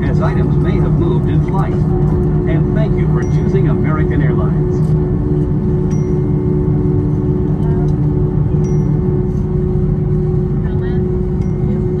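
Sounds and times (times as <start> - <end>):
aircraft cabin rumble: 0.0 - 12.0.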